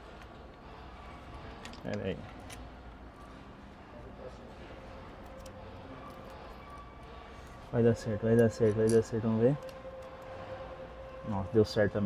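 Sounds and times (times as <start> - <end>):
low room hum: 0.0 - 12.0
metal parts clicking: 1.6 - 2.6, 5.1 - 7.6.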